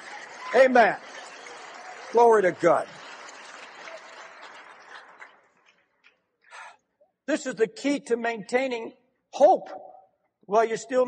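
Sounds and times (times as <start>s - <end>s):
congregation applauding: 0.0s - 6.2s.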